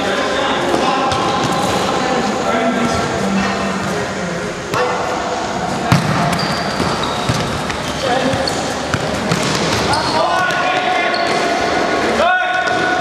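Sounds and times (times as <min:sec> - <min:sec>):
shoes squeaking on court: 0:05.9 - 0:11.5.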